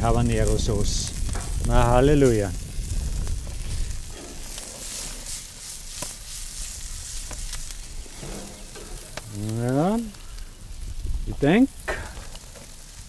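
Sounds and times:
food sizzling on a stove: 0.0 - 13.0
small pops and crackles: 0.0 - 13.0.

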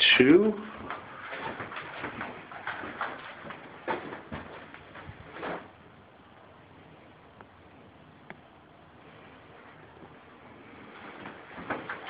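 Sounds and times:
footsteps: 0.0 - 5.8, 9.6 - 12.0.

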